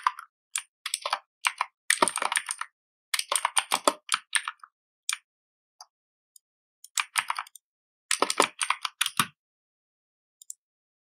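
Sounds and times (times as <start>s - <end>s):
typing on computer keyboard: 0.0s - 5.2s, 6.9s - 9.4s.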